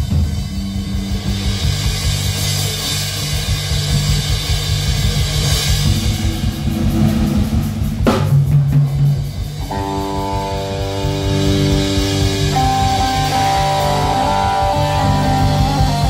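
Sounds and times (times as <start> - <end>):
bass guitar: 0.0 - 16.0
drum kit and cymbals: 0.0 - 16.0
electric guitar chord: 9.6 - 16.0.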